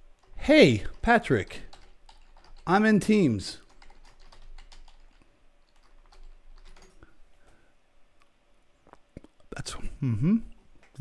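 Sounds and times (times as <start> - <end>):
computer keyboard typing: 0.2 - 2.9, 3.6 - 7.1.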